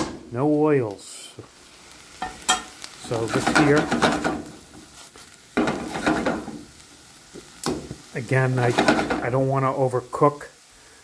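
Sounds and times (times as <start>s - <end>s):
vegetables sizzling in a pan: 0.0s - 11.0s.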